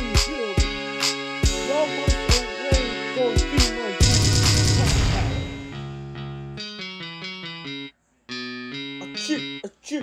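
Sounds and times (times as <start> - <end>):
plucked melody: 1.7 - 9.7.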